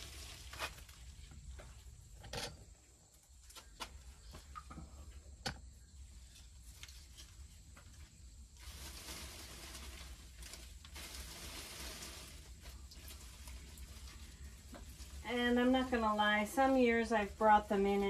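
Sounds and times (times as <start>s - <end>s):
rustling plant leaves: 0.0s - 1.6s, 6.0s - 18.0s.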